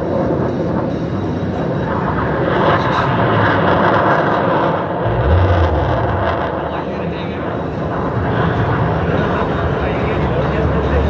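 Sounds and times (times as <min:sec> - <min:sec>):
aircraft engine drone: 0:00.0 - 0:11.0.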